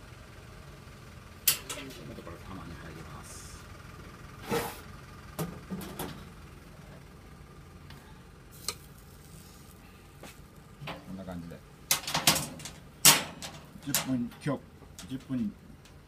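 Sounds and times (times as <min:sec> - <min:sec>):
steady low hum: 0:00.0 - 0:16.0.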